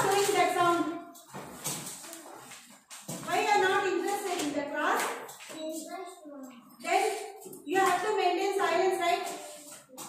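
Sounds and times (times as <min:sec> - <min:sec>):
classroom room noise: 0:00.0 - 0:10.0.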